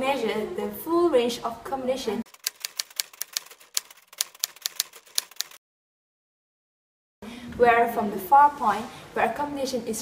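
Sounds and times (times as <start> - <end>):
typewriter key clicks: 2.3 - 5.6.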